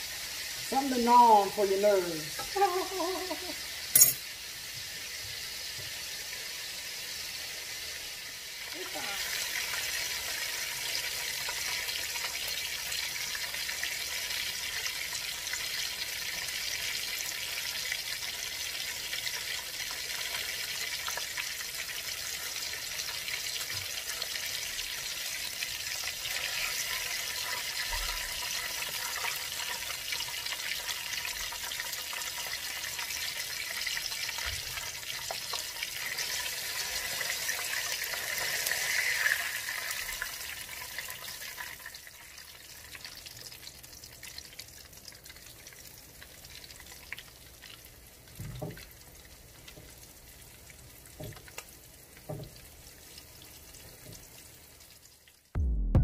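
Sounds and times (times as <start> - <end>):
oil sizzling and crackling: 0.0 - 55.6.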